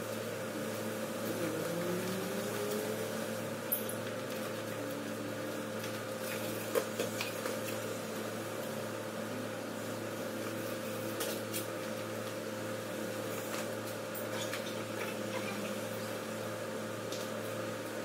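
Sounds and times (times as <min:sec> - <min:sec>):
steady mechanical hum: 0:00.0 - 0:18.0.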